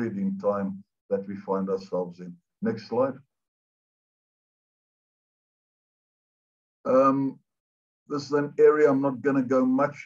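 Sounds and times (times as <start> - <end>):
man speaking: 0.0 - 3.2, 6.9 - 7.3, 8.1 - 10.0.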